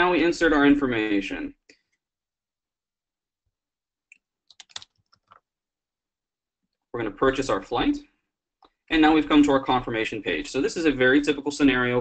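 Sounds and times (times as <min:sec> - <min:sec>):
keyboard keystrokes: 0:04.5 - 0:05.4.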